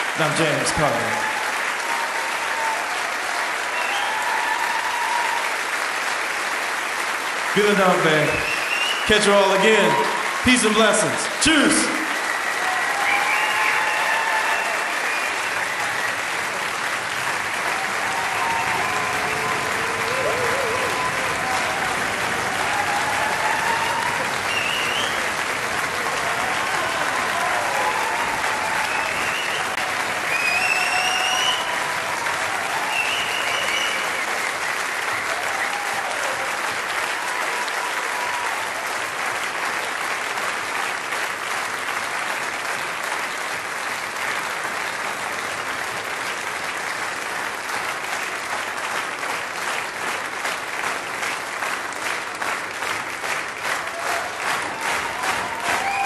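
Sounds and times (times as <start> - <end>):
audience applauding: 0.0 - 56.0
shouts and whistles: 3.7 - 5.4, 8.4 - 10.2, 12.2 - 16.2, 18.1 - 21.8, 22.6 - 25.3, 26.5 - 36.3, 55.0 - 56.0.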